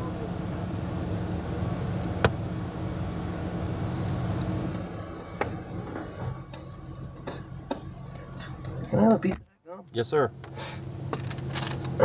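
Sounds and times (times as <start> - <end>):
vehicle cabin hum: 0.0 - 12.0.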